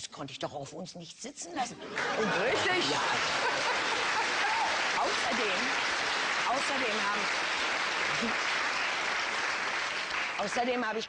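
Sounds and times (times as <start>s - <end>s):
audience applauding: 1.9s - 11.0s.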